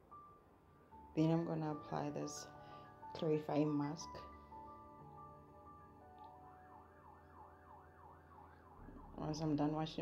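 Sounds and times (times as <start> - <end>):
faint siren yelping: 6.5 - 10.0.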